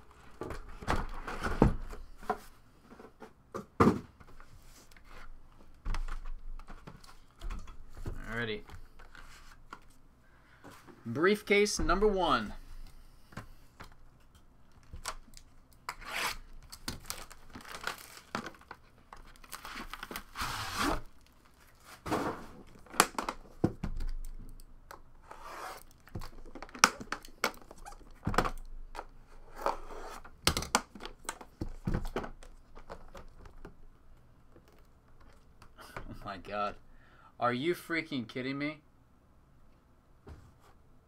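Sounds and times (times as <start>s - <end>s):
plastic wrapping crinkling and tearing: 14.7s - 20.4s.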